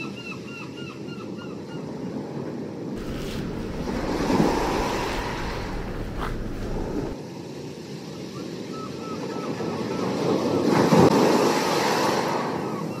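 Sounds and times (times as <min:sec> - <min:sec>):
sea wave breaking: 0:03.0 - 0:07.2.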